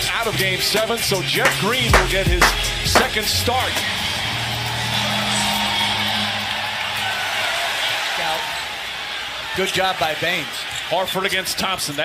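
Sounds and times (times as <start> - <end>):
arena crowd din: 0.0 - 12.0.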